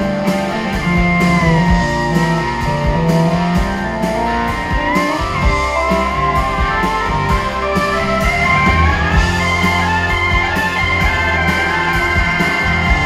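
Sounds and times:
rock band playing: 0:00.0 - 0:13.0
sliding lead guitar note: 0:00.0 - 0:13.0.

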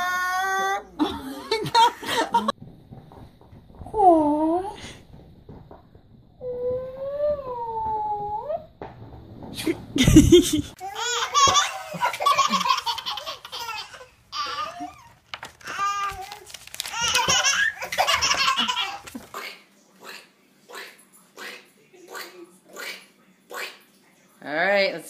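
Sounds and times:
babies laughing: 0:10.8 - 0:19.4.

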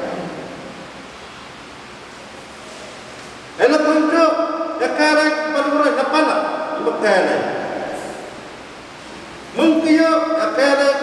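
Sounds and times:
man speaking into a microphone: 0:00.0 - 0:00.6, 0:03.6 - 0:08.2, 0:09.5 - 0:11.0
steady background hiss: 0:00.0 - 0:11.0.

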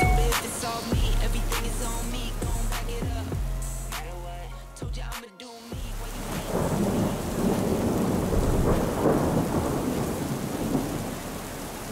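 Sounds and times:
steady rain: 0:05.8 - 0:11.9
rolling thunder rumble: 0:06.1 - 0:11.9.

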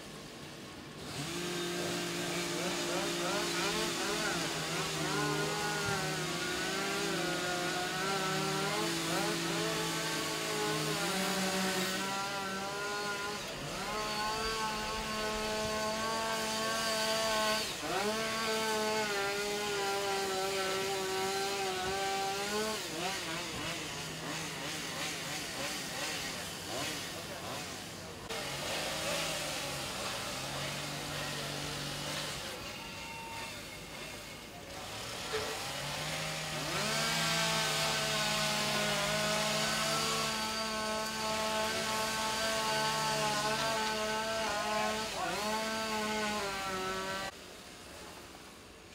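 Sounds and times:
chainsaw revving: 0:00.9 - 0:47.4.

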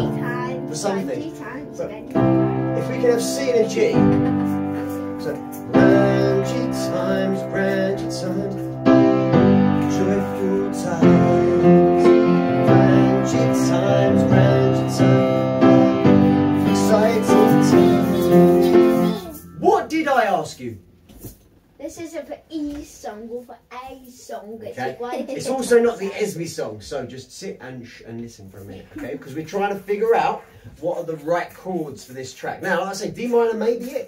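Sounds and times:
people talking: 0:00.0 - 0:02.1, 0:19.0 - 0:20.8, 0:21.8 - 0:34.0
piano chords: 0:00.0 - 0:20.6.

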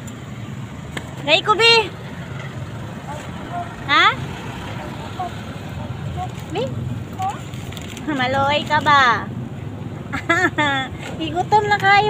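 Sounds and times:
low rumble of street traffic: 0:00.0 - 0:12.0.

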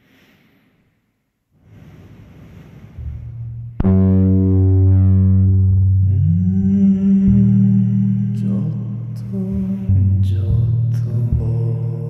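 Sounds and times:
low drone rich in overtones: 0:03.0 - 0:12.0.

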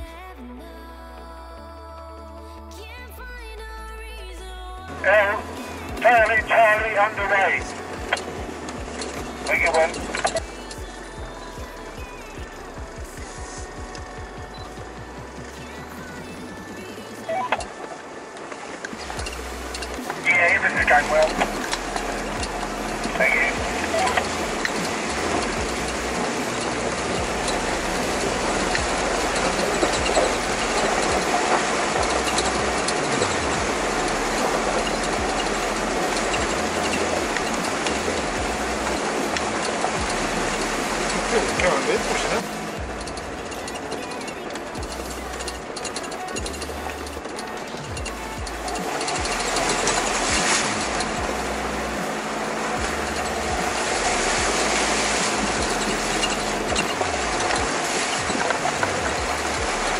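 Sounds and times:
river water rushing and splashing: 0:04.9 - 0:59.9.

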